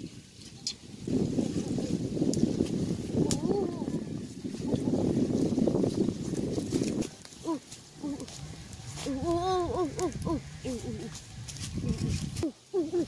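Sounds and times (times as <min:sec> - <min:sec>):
voice making wordless calls: 0:03.2 - 0:05.4, 0:07.4 - 0:08.4, 0:09.0 - 0:13.0.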